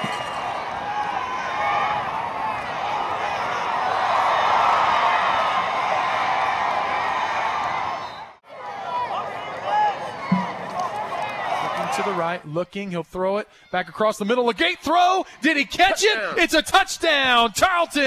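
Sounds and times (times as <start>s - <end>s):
stadium crowd shouting: 0.0s - 12.4s.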